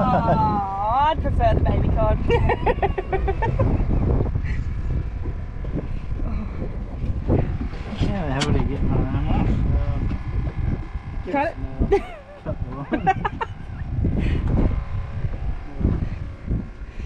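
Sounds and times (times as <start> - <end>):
laughter: 0.0 - 0.6, 2.2 - 4.8, 11.9 - 13.8
wind rumbling on microphone: 0.0 - 17.0.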